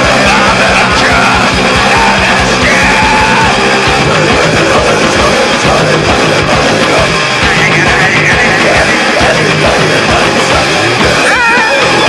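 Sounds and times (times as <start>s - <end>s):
distorted guitar and bass: 0.0s - 12.0s
pounding drum beat: 0.0s - 12.0s
person yelling: 0.5s - 3.6s, 11.1s - 12.0s.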